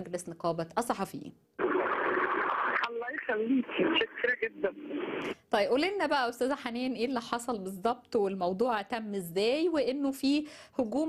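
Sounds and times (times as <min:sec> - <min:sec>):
telephone line hiss: 0:01.6 - 0:05.3
woman speaking over the phone: 0:02.8 - 0:06.1.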